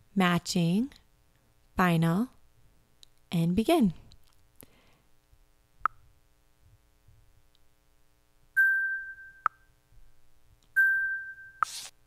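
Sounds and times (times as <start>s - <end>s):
faint steady tone: 7.5s - 11.7s.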